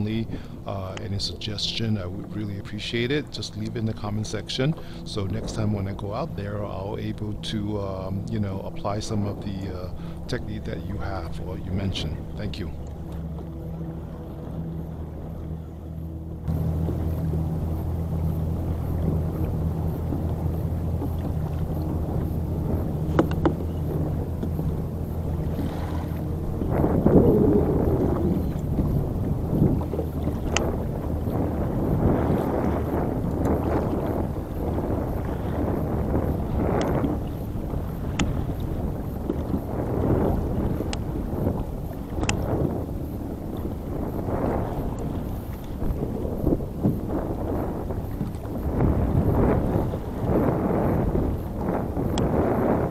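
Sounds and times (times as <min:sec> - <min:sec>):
boat engine droning: 0:00.0 - 0:52.9
choppy water splashing: 0:00.0 - 0:52.9
wind gusts on microphone: 0:00.0 - 0:52.9.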